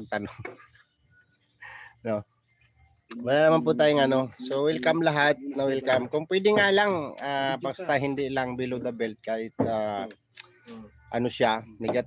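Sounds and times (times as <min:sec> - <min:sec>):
night insects chirring: 0:00.0 - 0:12.0.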